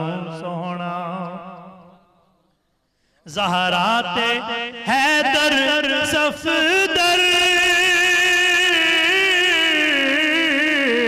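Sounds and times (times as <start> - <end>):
man singing into a microphone: 0.0 - 2.1, 3.2 - 11.0.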